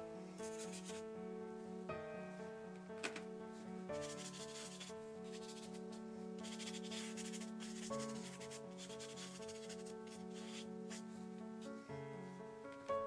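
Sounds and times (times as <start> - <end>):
background music with held notes: 0.0 - 13.0
brush rubbing across paper: 0.4 - 1.0, 4.0 - 11.1.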